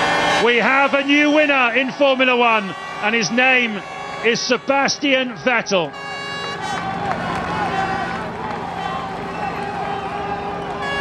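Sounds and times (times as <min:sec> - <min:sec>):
air horns: 0:00.0 - 0:08.4, 0:09.1 - 0:11.0
crowd cheering and shouting: 0:00.0 - 0:11.0.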